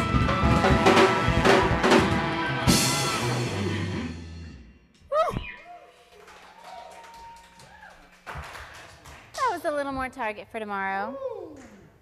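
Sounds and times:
live band held tones: 0.0s - 4.3s.

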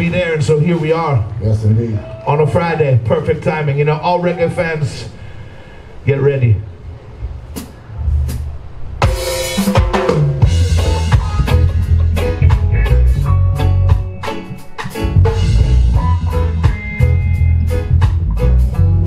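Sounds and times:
reggae band playing: 0.0s - 19.0s.

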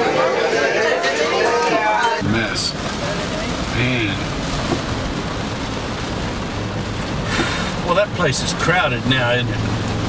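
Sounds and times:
tyres on wet road: 0.0s - 10.0s
heavy rain on car roof: 1.3s - 10.0s.

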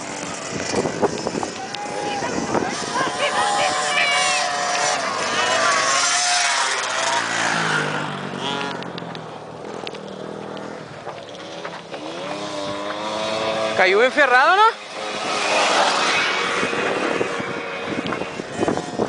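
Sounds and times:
small engines revving: 0.0s - 19.0s.

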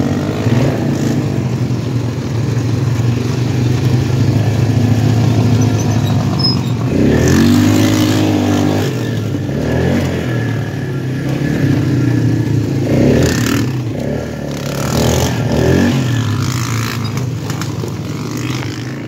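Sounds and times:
atv engine revving: 0.0s - 19.0s.

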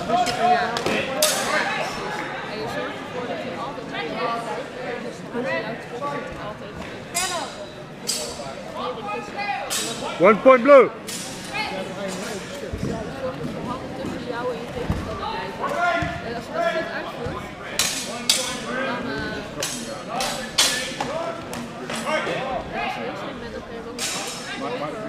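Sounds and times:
crowd murmur in a hall: 0.0s - 25.0s.

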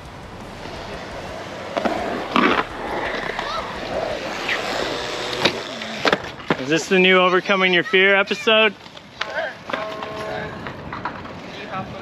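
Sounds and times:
bike tyres rolling on concrete: 0.0s - 12.0s.

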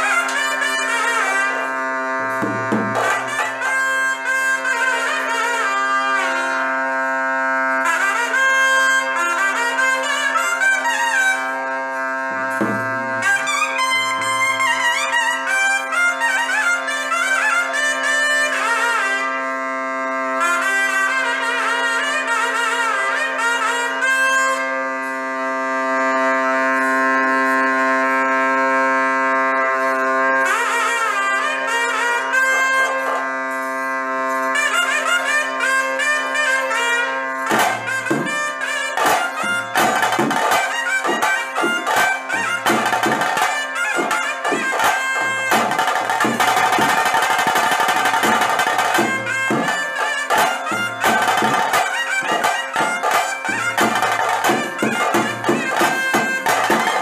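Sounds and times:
double-reed pipe melody: 0.0s - 57.0s
low drum strokes: 12.3s - 13.4s.

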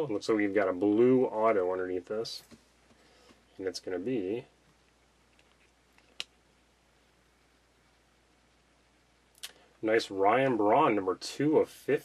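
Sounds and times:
faint room tone: 0.0s - 12.0s.

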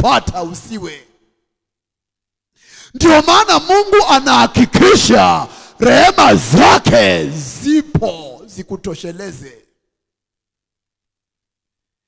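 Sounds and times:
person speaking: 2.9s - 9.5s.

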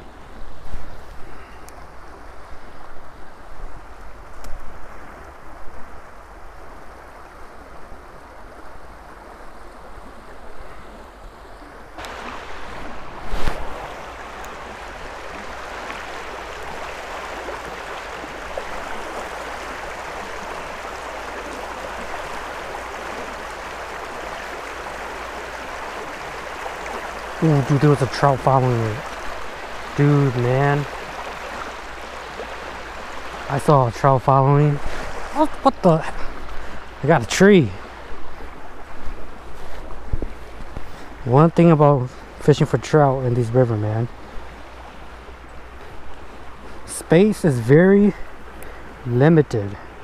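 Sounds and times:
water rushing over rocks: 11.9s - 50.0s.

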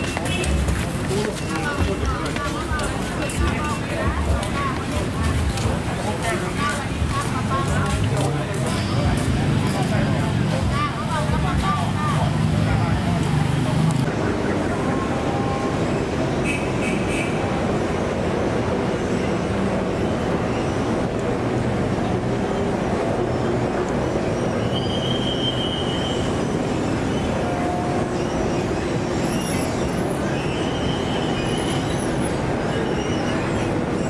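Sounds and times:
road traffic roar: 0.0s - 34.0s
faint high whistles: 24.4s - 26.5s, 28.2s - 32.1s.

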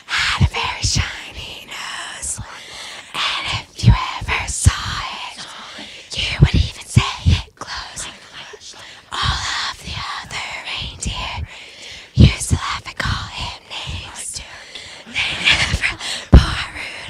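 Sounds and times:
group whispering: 0.0s - 17.0s
loud low thumps: 15.8s - 16.8s.

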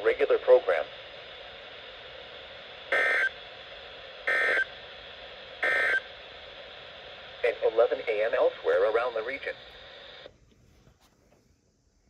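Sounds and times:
radio hiss: 0.0s - 10.4s.

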